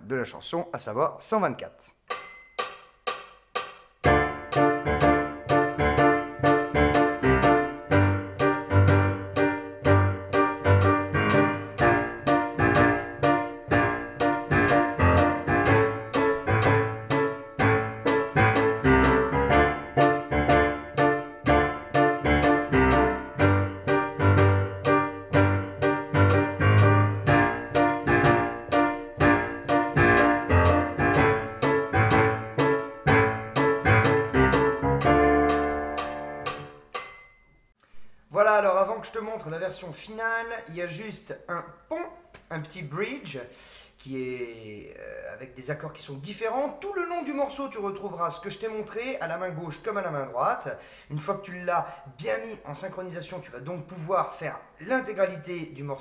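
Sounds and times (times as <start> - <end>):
metronome clicking: 2.1 - 37.8
digital piano chords: 4.0 - 37.3.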